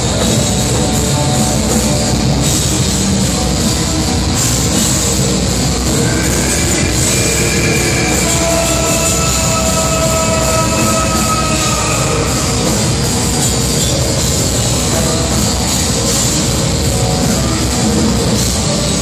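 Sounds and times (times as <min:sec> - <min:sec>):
black metal band playing live: 0:00.0 - 0:19.0
long held note: 0:06.0 - 0:13.5.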